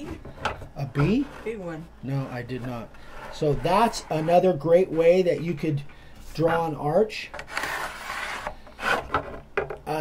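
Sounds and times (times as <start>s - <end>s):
stick scraping wooden board: 2.3s - 5.5s, 7.3s - 9.4s.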